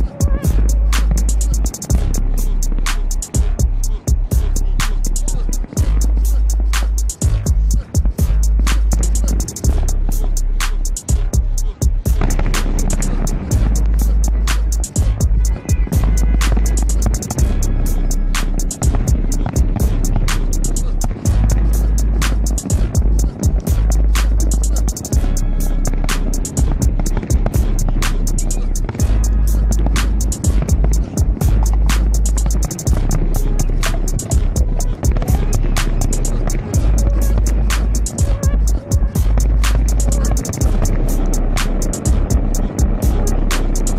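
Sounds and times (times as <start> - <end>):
fireworks cracking and banging: 0.0 - 43.9
low rumble: 0.0 - 43.9.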